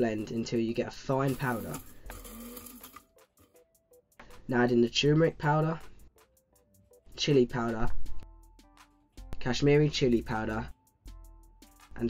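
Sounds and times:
faint background music: 0.0 - 12.0
spice grinder whirring: 1.3 - 3.1.

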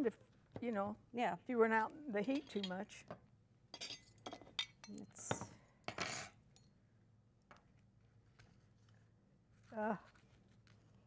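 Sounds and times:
metal utensils clinking on dishes: 3.8 - 5.0.

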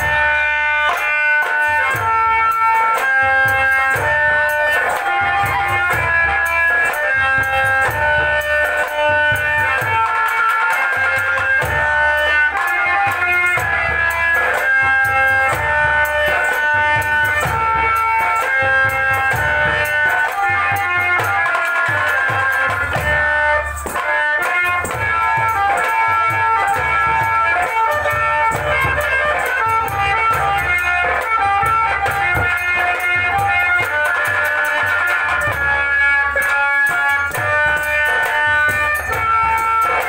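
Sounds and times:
folk dance melody: 0.0 - 40.0
hand drum beat: 0.0 - 40.0.

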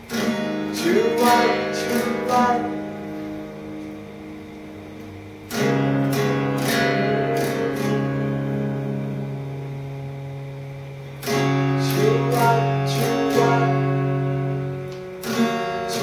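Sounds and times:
fingerstyle acoustic guitar: 0.0 - 10.5, 11.2 - 16.0.

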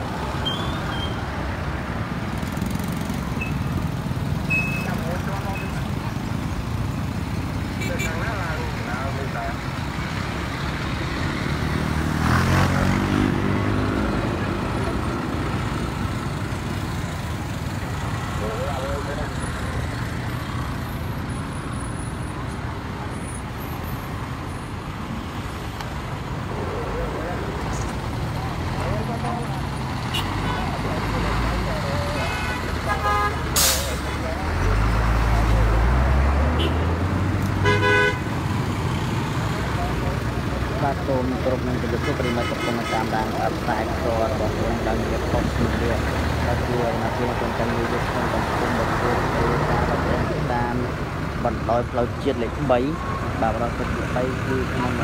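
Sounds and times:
heavy road traffic: 0.0 - 55.0
vehicle horns tooting: 7.8 - 8.4, 30.1 - 30.7, 32.1 - 34.3, 36.5 - 36.9, 37.6 - 38.3, 42.0 - 43.3.

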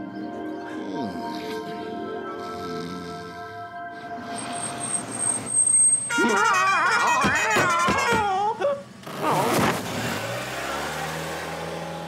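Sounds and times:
soft sustained music: 0.0 - 5.2
wavering cartoon yell: 6.1 - 8.8.

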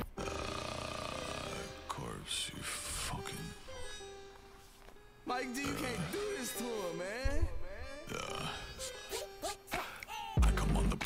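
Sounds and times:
man rapping: 5.3 - 8.5, 9.1 - 11.0.

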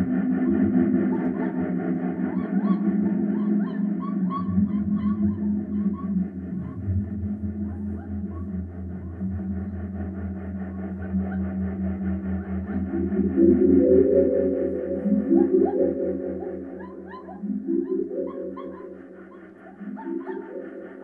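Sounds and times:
pulsing low tone: 0.0 - 21.0
sustained low drones: 0.0 - 21.0.

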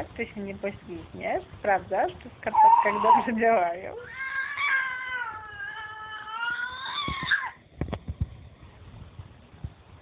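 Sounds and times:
baby squealing: 2.5 - 3.3, 4.0 - 7.6.

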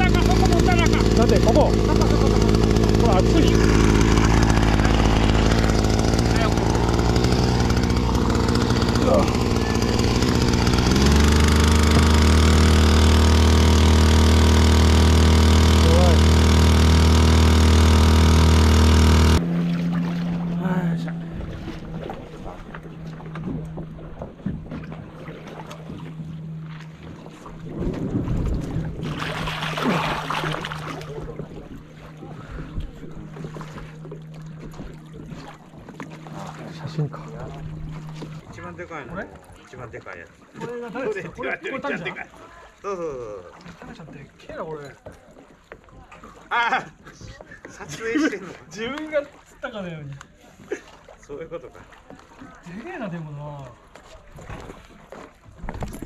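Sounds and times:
outboard motor running: 0.0 - 56.0
water and wind noise: 0.0 - 56.0.

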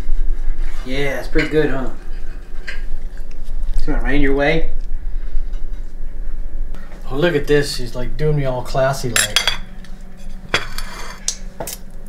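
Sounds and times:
steady low hum: 0.0 - 12.0
cutlery clinking on ceramic plate: 9.2 - 9.6.

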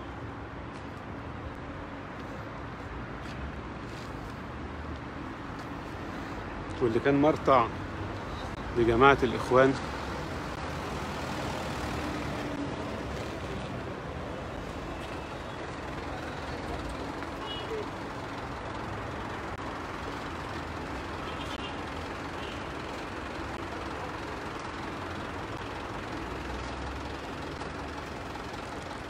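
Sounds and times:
city street traffic rumble: 0.0 - 29.0.

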